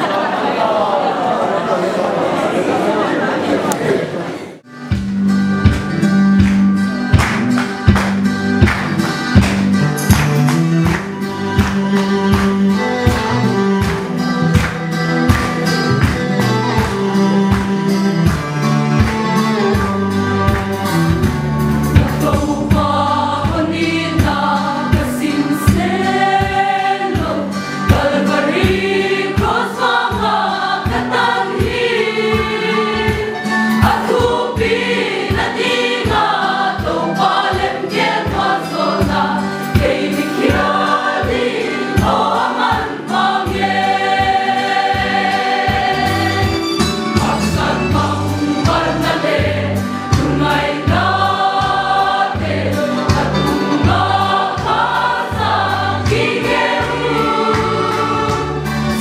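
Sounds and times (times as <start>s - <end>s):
choir singing a hymn: 0.0s - 4.6s, 21.8s - 59.0s.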